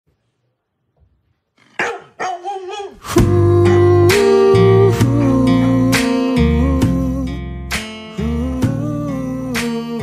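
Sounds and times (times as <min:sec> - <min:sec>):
dog barking: 0:01.8 - 0:03.0.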